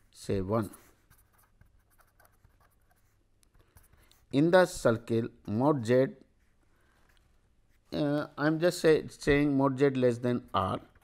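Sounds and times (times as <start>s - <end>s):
pen scratching on paper: 0.0s - 4.3s.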